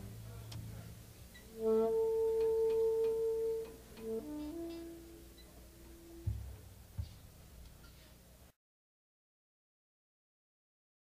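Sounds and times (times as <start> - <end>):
long held instrument note: 1.5 - 6.6.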